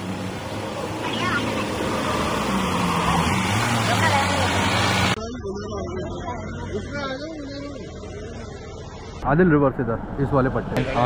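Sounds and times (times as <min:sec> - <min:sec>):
water splashing: 0:00.0 - 0:05.2
engine running under load: 0:00.0 - 0:09.2.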